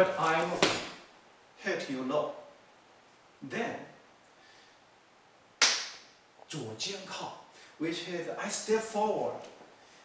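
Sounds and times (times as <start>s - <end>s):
sharp cloth crack: 5.6s - 6.1s.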